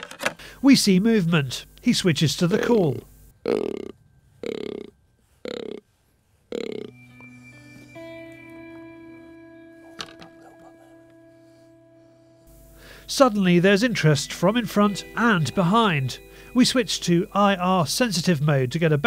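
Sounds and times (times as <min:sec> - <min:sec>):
deer grunter groans: 0:03.4 - 0:05.9, 0:06.5 - 0:07.0
music with held tones: 0:05.1 - 0:19.0.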